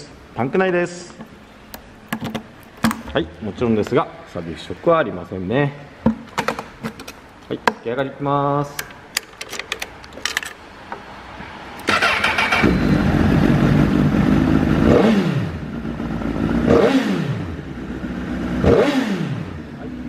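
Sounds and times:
motorcycle starter cranking: 11.8 - 12.8.

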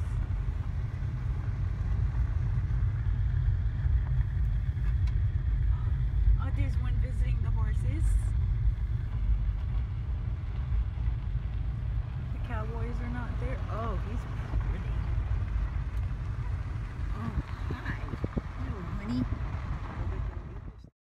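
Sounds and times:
vehicle rumbling on the move: 0.0 - 20.9.

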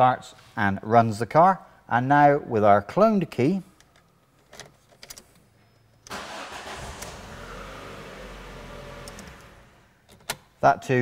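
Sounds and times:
car engine cranking and running: 6.1 - 9.9.

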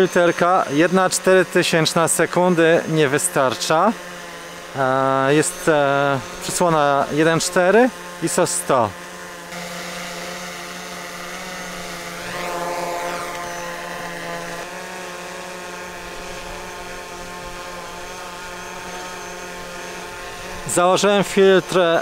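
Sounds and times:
drone propellers whining: 0.0 - 22.0.

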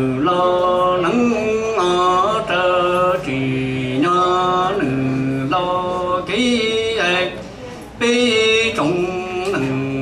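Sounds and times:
man chanting through a microphone: 0.0 - 10.0.

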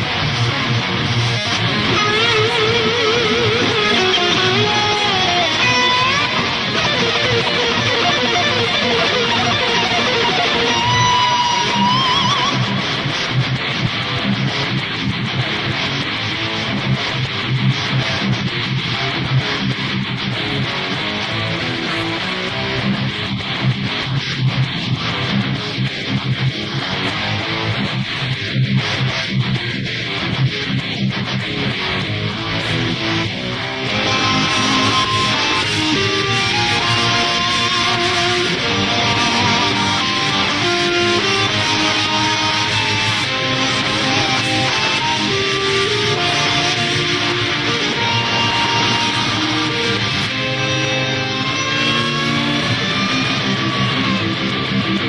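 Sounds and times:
heavy metal electric guitar: 0.0 - 55.0.

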